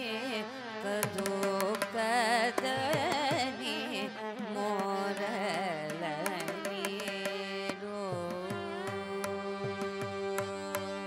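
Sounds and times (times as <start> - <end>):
woman singing ornamented notes: 0.0 - 11.0
percussion strokes: 4.7 - 10.9.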